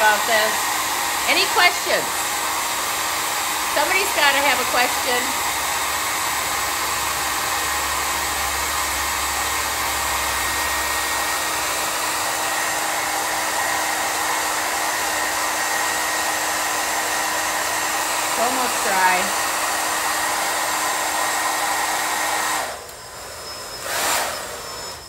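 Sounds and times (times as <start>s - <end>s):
blow dryer blowing air: 0.0s - 25.0s.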